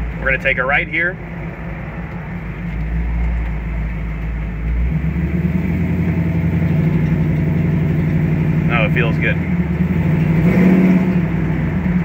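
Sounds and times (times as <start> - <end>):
car engine running: 0.0 - 12.0.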